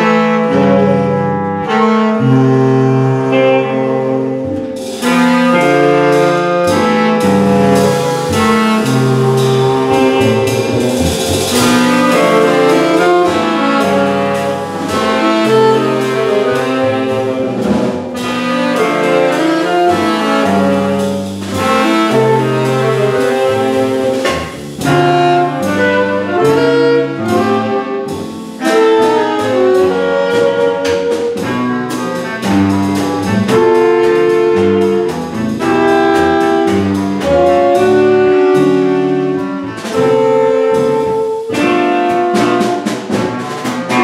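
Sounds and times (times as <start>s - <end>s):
double bass: 0.0s - 44.0s
saxophones and clarinets: 0.0s - 44.0s.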